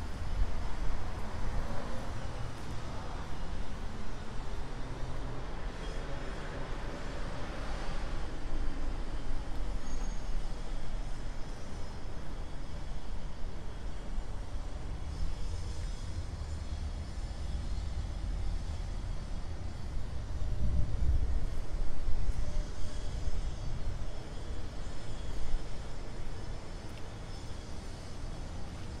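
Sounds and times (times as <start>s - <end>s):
city street traffic rumble: 0.0s - 29.0s.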